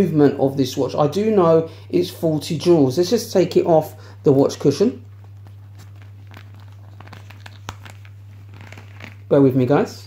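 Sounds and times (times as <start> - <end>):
watch strap rustling and clicking: 5.0 - 9.3.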